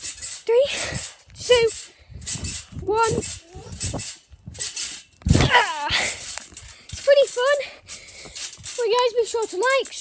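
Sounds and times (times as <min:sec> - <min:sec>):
trampoline springs creaking: 0:00.0 - 0:10.0.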